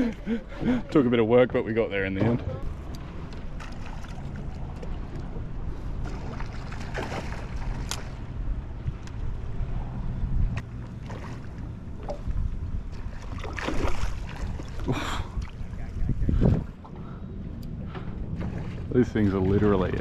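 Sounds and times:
water moving against hull: 0:00.0 - 0:20.0
wind noise on microphone: 0:11.9 - 0:20.0.

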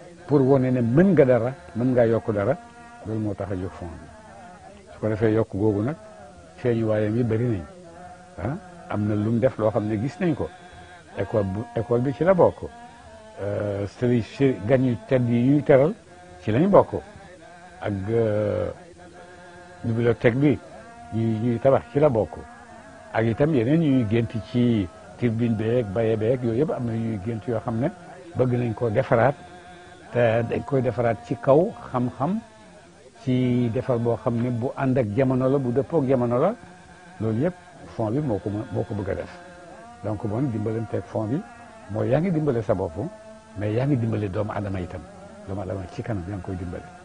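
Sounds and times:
man talking: 0:00.2 - 0:04.2, 0:04.8 - 0:06.0, 0:06.6 - 0:07.7, 0:08.4 - 0:12.8, 0:13.4 - 0:17.2, 0:17.8 - 0:18.8, 0:19.8 - 0:22.5, 0:23.2 - 0:29.4, 0:30.1 - 0:36.6, 0:37.2 - 0:39.4, 0:40.0 - 0:47.0
elderly man speaking: 0:00.2 - 0:07.8, 0:08.4 - 0:12.8, 0:13.4 - 0:18.8, 0:23.2 - 0:47.0.

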